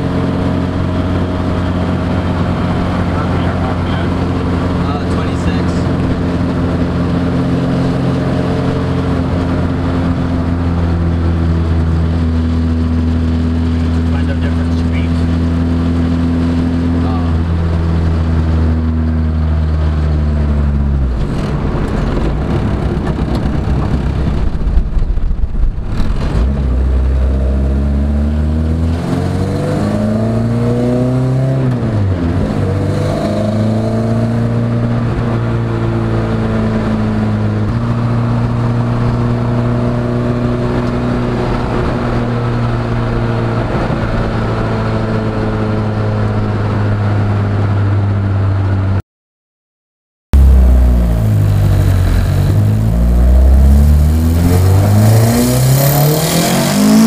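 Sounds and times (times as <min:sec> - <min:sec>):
car engine revving while driving: 0:00.0 - 0:24.5, 0:25.8 - 0:48.4, 0:50.4 - 0:57.0.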